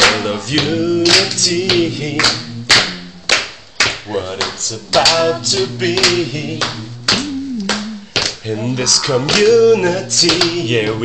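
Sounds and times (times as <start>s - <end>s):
person singing: 0.0s - 3.4s, 4.0s - 11.0s
hands clapping: 0.0s - 8.4s, 9.0s - 9.6s, 10.2s - 10.7s.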